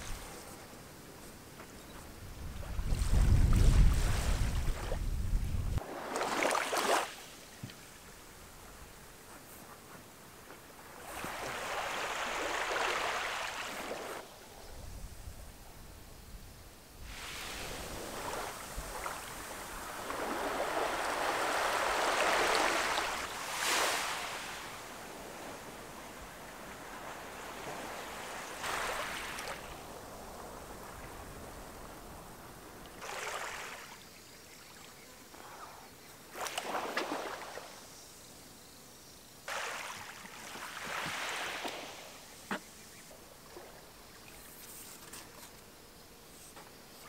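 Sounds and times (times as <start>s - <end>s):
small waves washing on sand: 2.5s - 5.2s, 5.8s - 8.1s, 10.5s - 14.3s, 17.0s - 34.1s, 36.3s - 37.9s, 39.5s - 44.1s.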